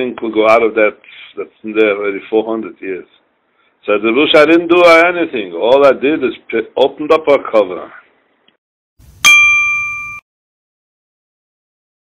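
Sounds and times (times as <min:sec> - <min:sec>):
bright bell ding: 0:09.2 - 0:10.2.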